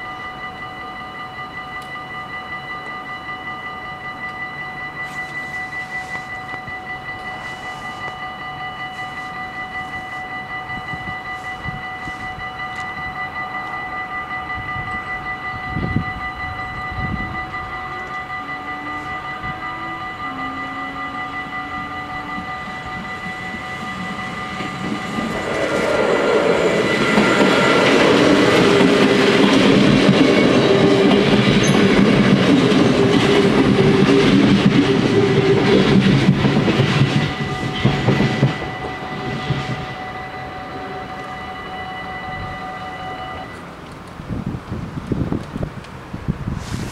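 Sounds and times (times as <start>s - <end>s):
level crossing bells ringing: 0.0s - 43.8s
electric train passing: 0.0s - 46.9s
train wheel clatter: 22.3s - 41.7s.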